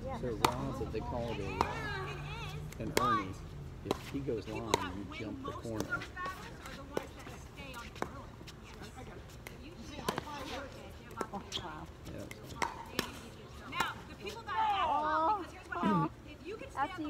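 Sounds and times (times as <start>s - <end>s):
pickleballs clacking: 0.3s - 14.4s.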